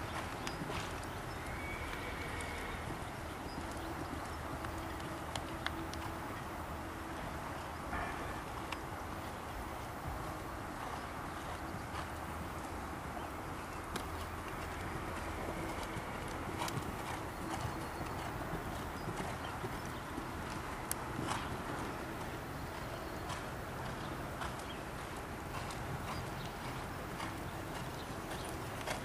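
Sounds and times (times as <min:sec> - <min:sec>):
horse hoofbeats on sand: 0:00.0 - 0:29.0
outdoor background hiss: 0:00.0 - 0:29.0.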